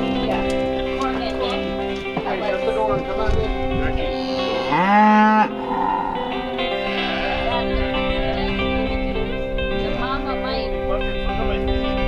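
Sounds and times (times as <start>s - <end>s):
plucked guitar music: 0.0s - 12.0s
cow mooing: 4.0s - 8.9s.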